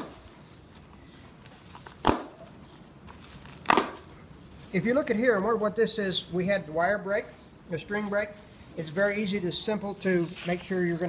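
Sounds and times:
plastic bag crinkling: 0.2s - 5.8s.

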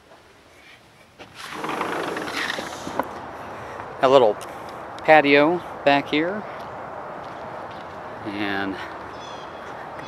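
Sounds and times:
sliding glass door opening: 1.4s - 3.1s.

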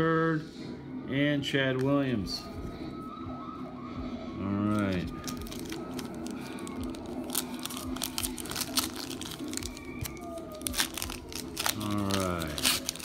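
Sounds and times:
plastic wrapper crinkling and tearing: 4.7s - 13.0s.

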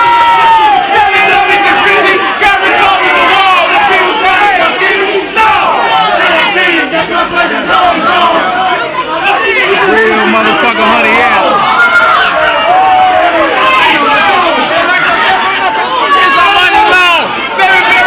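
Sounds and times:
crowd shouting and cheering: 0.0s - 18.0s.

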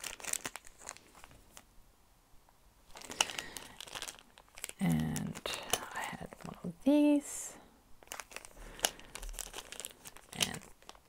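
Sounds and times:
plastic packaging crinkling: 0.0s - 1.7s, 2.9s - 7.3s, 8.0s - 11.0s.

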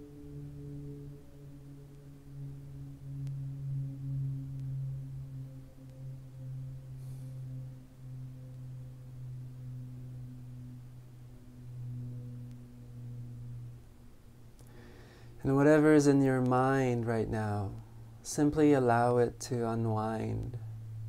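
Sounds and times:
low hum of held tones: 0.0s - 21.0s.

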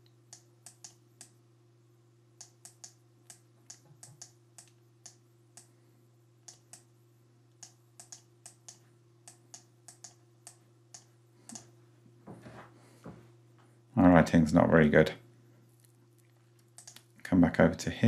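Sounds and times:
faint low hum: 0.0s - 18.0s.

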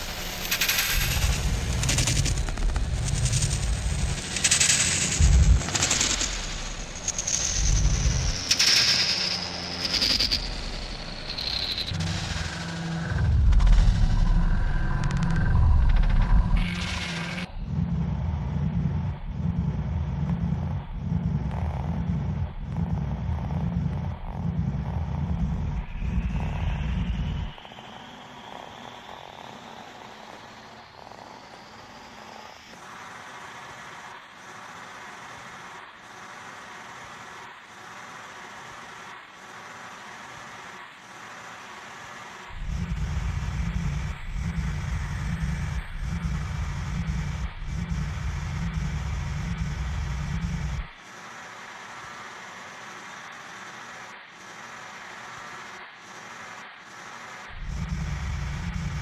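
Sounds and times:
heavy pulsing bass: 1.0s - 8.5s, 10.4s - 27.6s, 42.6s - 51.0s, 57.5s - 59.0s.

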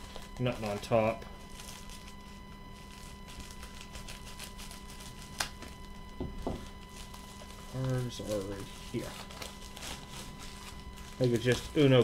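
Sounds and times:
plastic mailer rustling: 0.0s - 12.0s
steady electrical hum: 0.0s - 12.0s.

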